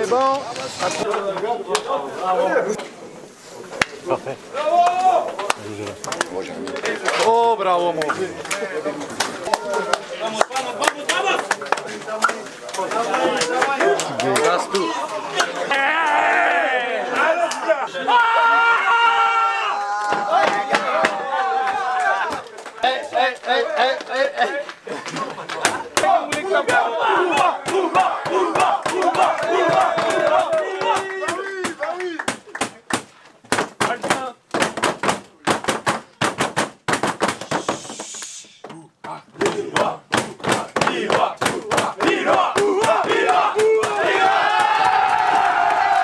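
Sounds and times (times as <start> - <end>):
men chanting and shouting: 4.1 - 32.4, 37.4 - 46.0
sharp claps: 7.9 - 14.6, 22.3 - 38.3, 39.4 - 44.9
short hiss: 37.4 - 38.6.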